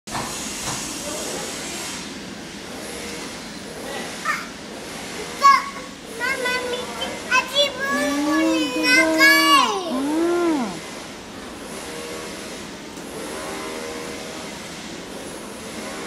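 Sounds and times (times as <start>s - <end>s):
toddler squealing and babbling: 5.4s - 10.8s.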